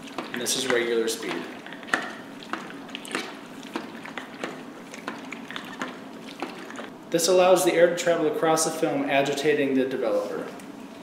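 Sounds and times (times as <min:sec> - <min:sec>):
water sloshing in plastic tank: 0:00.0 - 0:07.0.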